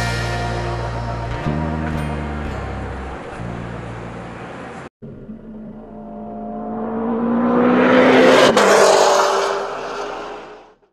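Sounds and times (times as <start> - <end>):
car passing by at speed: 5.5 - 10.8.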